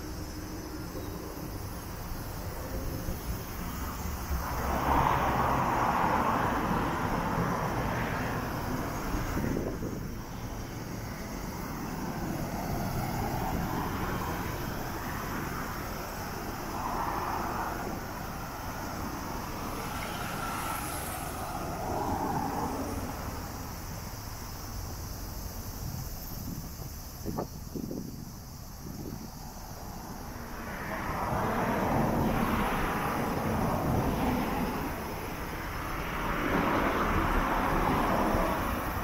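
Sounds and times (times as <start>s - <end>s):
cars passing: 0.0s - 39.0s.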